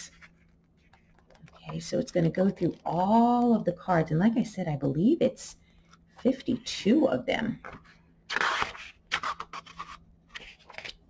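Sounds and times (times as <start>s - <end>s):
book pages flipping: 0.0s - 3.0s, 7.6s - 11.0s.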